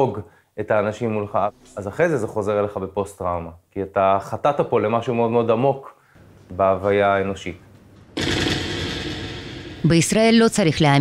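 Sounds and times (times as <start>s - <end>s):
rapid machine-gun fire: 8.2s - 9.9s.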